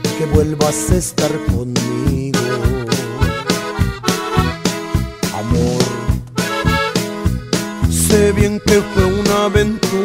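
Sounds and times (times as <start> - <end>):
accordion melody: 0.0 - 10.0
bass and drum beat: 0.0 - 10.0.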